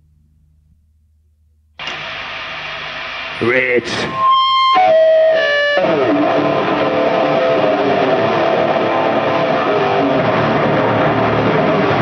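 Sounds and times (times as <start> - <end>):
faint low hum: 0.0 - 1.8
loud steady hiss-like noise: 1.8 - 12.0.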